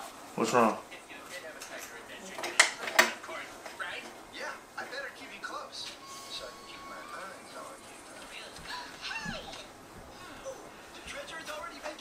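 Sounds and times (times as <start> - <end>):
faint voices: 0.5 - 12.0.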